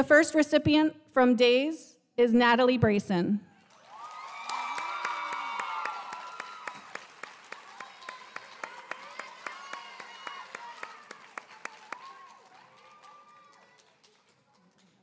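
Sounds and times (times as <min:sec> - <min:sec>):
audience applauding: 0:03.6 - 0:15.0
voices cheering: 0:03.8 - 0:13.9.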